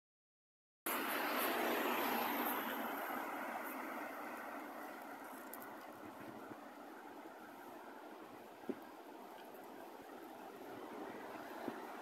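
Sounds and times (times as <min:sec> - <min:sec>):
car driving past: 0:00.9 - 0:06.6
traffic hum: 0:00.9 - 0:12.0.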